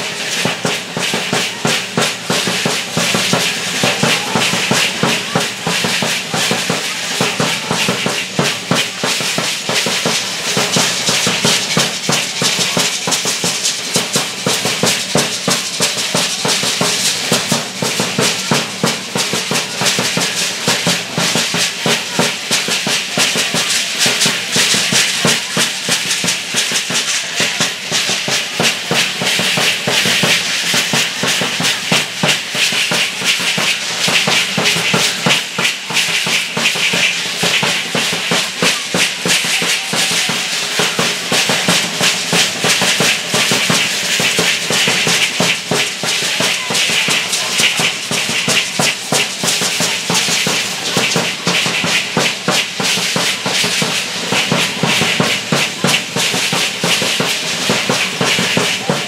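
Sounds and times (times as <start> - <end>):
drum beating: 0.0 - 59.0.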